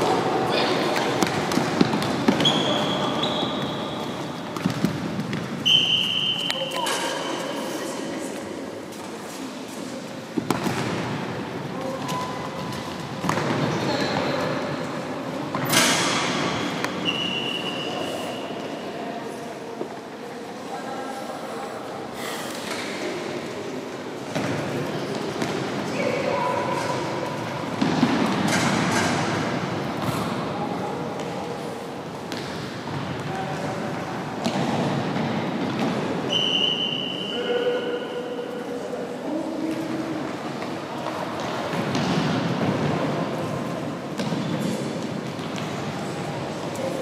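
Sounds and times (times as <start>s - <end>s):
echoing hall background noise: 0.0s - 47.0s
referee's whistle echoing: 5.6s - 7.3s, 17.0s - 18.5s, 36.3s - 38.2s.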